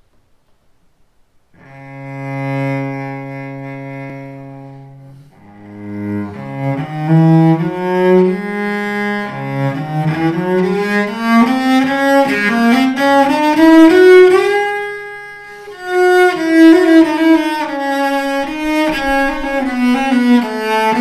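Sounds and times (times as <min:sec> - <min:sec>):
bowed cello: 0:01.6 - 0:21.0.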